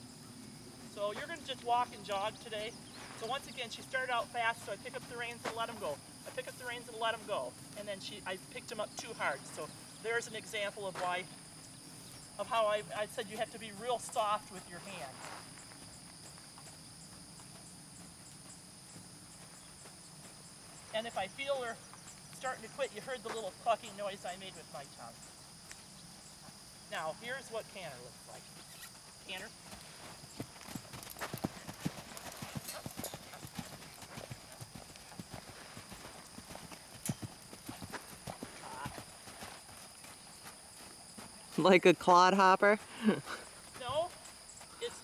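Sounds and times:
insects chirring: 0.0s - 45.0s
horse hoofbeats on sand: 1.0s - 7.8s, 12.1s - 24.4s, 28.4s - 41.8s.

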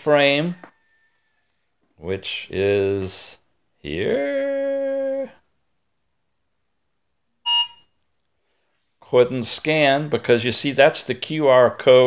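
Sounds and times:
short electronic beep: 7.4s - 7.9s.

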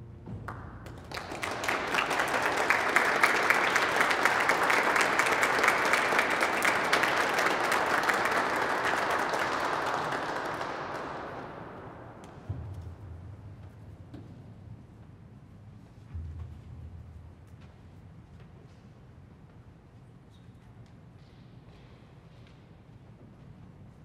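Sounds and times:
audience applauding: 0.5s - 12.4s.

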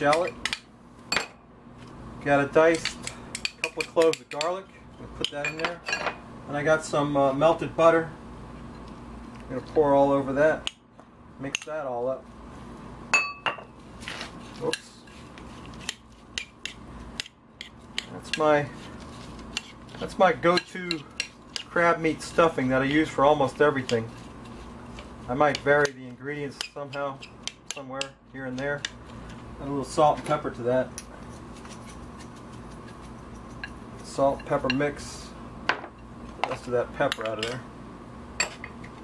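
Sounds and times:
low background hum: 0.0s - 39.0s.

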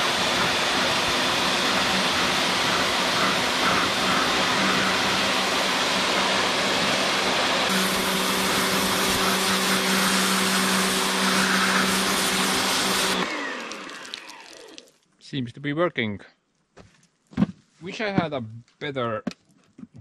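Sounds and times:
pressure washer motor humming: 0.0s - 14.9s
water jet hissing on roof tiles: 7.7s - 14.9s.

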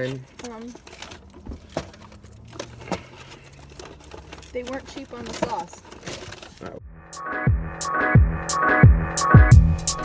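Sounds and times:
paper packaging crinkling: 0.0s - 6.8s.

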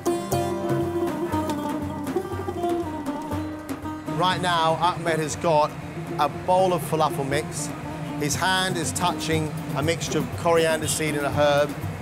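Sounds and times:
plucked string instrument: 0.0s - 12.0s.

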